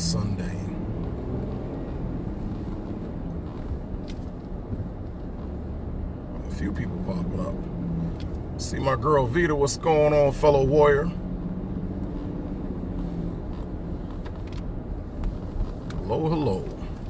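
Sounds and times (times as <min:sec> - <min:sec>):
car road and engine rumble: 0:00.0 - 0:17.0.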